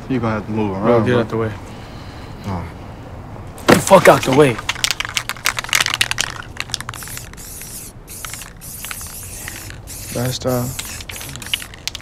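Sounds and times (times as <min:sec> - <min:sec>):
spray-paint can hissing: 0:05.3 - 0:12.0.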